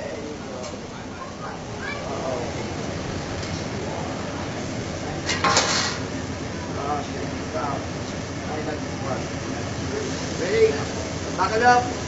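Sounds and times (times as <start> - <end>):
restaurant noise: 0.0 - 12.0.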